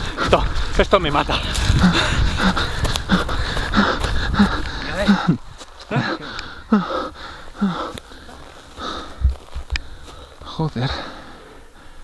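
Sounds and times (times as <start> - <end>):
man panting and gasping: 0.0 - 12.0.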